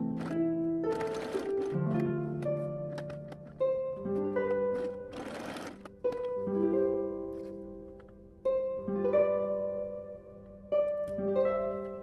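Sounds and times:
plucked-string background music: 0:00.0 - 0:12.0
sewing machine stitching: 0:00.2 - 0:01.8, 0:04.6 - 0:06.3.

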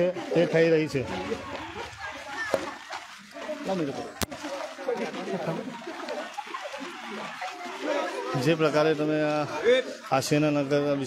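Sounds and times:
men talking in a crowd: 0:00.0 - 0:11.0.

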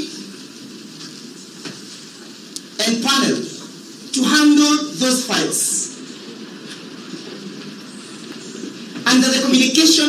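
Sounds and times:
crowded room noise: 0:00.0 - 0:10.0.

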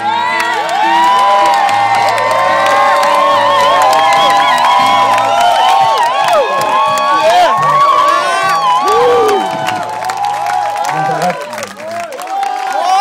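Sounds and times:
crowd cheering and whooping: 0:00.0 - 0:13.0.

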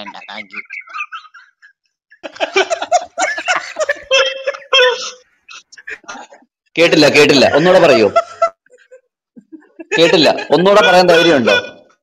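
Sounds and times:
voices talking over audio chat: 0:00.0 - 0:12.0.

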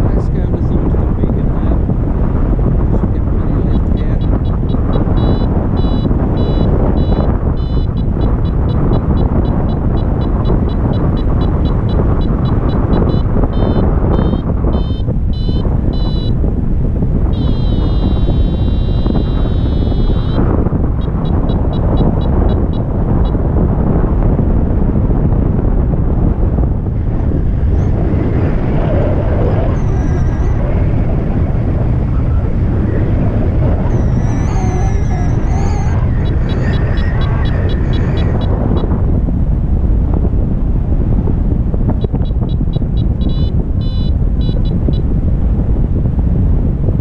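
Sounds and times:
wind rushing over microphone: 0:00.0 - 0:47.0
variometer wavering tone: 0:03.5 - 0:23.5, 0:27.0 - 0:38.9, 0:42.0 - 0:45.1
variometer beeping: 0:03.6 - 0:23.5, 0:27.8 - 0:39.0, 0:42.0 - 0:45.1.

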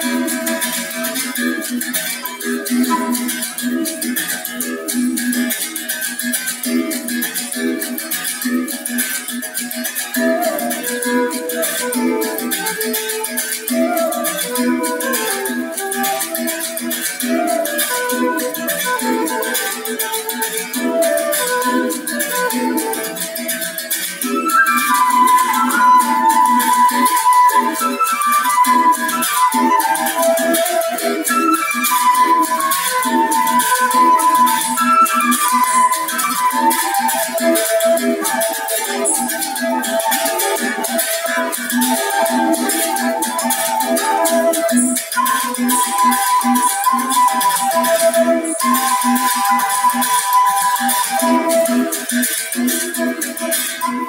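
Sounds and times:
flute melody: 0:00.0 - 0:04.2, 0:10.1 - 0:54.0.

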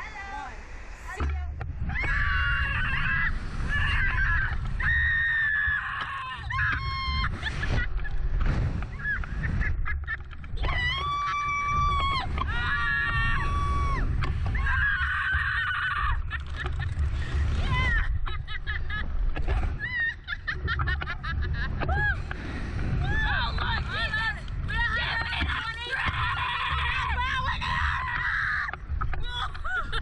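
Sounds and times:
wind rumbling on microphone: 0:00.0 - 0:30.0
riders screaming and laughing: 0:01.9 - 0:30.0.

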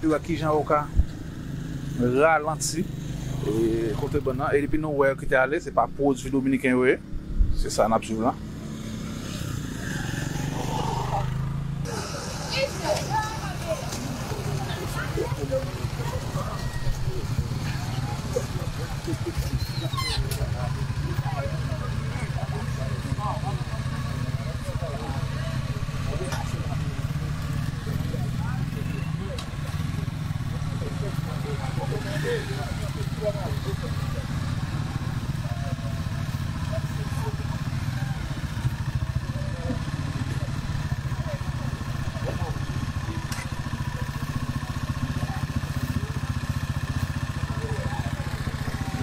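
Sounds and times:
motorcycle engines idling: 0:00.0 - 0:49.0
people talking: 0:02.0 - 0:07.0, 0:11.9 - 0:46.2, 0:47.4 - 0:49.0.

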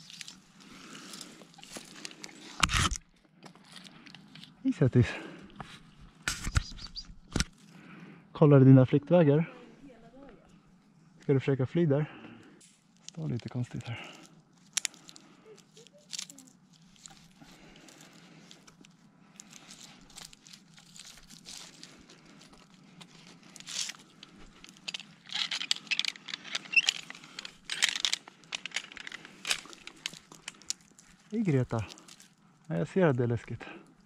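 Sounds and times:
twigs and needles rustling: 0:00.0 - 0:08.0, 0:12.7 - 0:34.0
carabiner clicks and snaps: 0:24.2 - 0:30.8.

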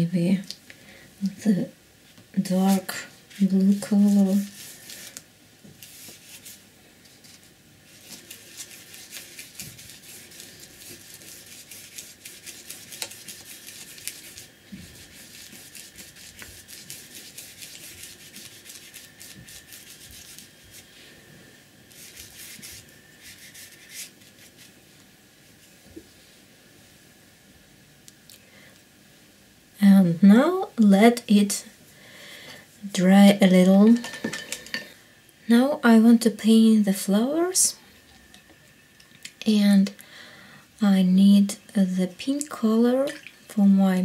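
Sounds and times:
paintbrush scratching on paper: 0:02.6 - 0:05.2, 0:05.8 - 0:06.6, 0:07.2 - 0:20.9, 0:21.9 - 0:24.7.

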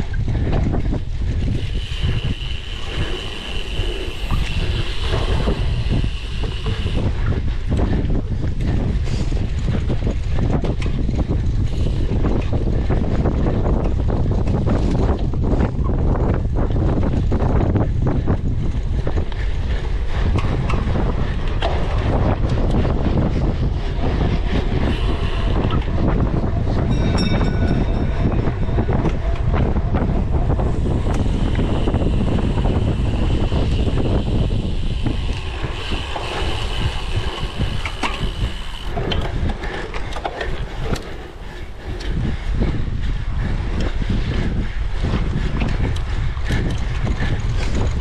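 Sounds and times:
bike clicks and rattles: 0:00.0 - 0:48.0
wind rush on microphone: 0:00.0 - 0:48.0.

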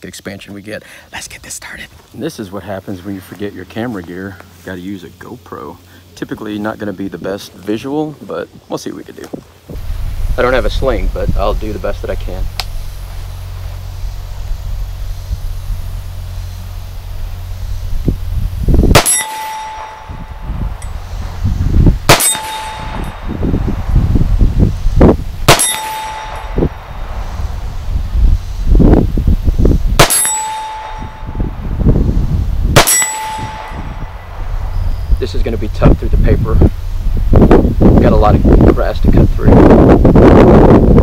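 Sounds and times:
rifle shots: 0:18.9 - 0:20.2, 0:22.0 - 0:23.3, 0:25.4 - 0:26.8, 0:30.0 - 0:31.2, 0:32.7 - 0:34.4
steel plate target ringing: 0:18.9 - 0:21.1, 0:22.0 - 0:23.6, 0:25.4 - 0:27.1, 0:30.0 - 0:31.7, 0:32.7 - 0:34.9.

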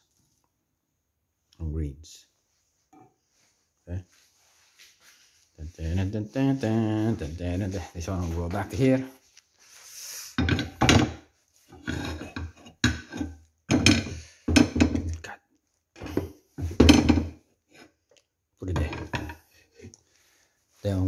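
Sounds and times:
metal spoon scraping a frying pan: 0:11.7 - 0:14.8.

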